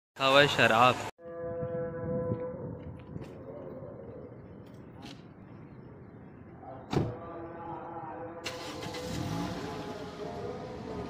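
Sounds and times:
car door thud: 6.9s - 7.2s
car engine starting and running: 8.4s - 11.0s.

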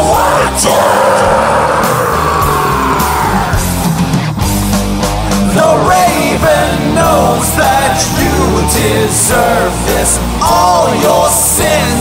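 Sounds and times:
heavy metal song: 0.0s - 12.0s
low bass notes: 0.0s - 12.0s.

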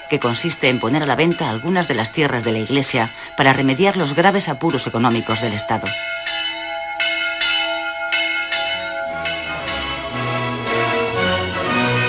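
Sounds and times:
church bells ringing: 0.0s - 12.0s
music: 8.9s - 12.0s.

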